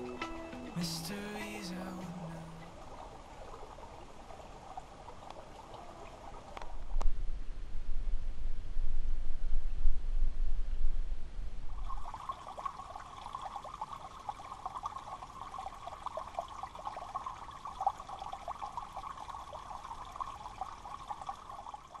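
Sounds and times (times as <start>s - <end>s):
water trickling and bubbling: 0.0s - 7.0s, 11.7s - 22.0s.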